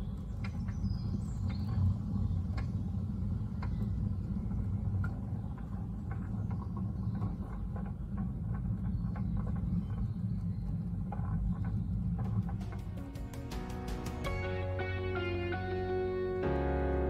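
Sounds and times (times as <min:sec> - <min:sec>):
sliding gate rolling on track: 0:11.3 - 0:17.0.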